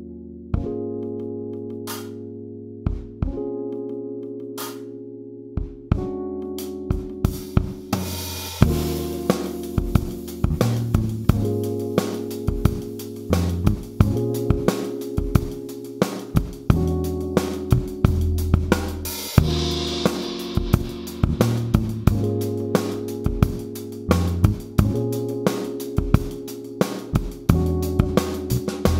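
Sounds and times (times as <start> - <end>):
acoustic drum kit: 6.9 - 28.9.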